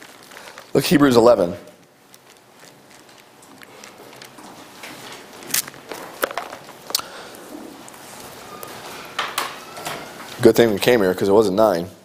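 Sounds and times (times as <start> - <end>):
book pages turning: 2.1 - 7.1.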